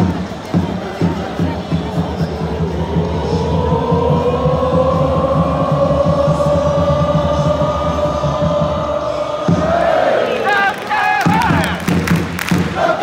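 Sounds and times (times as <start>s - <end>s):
crowd noise: 0.0s - 13.0s
crowd shouting a chant: 0.0s - 13.0s
crowd singing a held note: 1.0s - 13.0s.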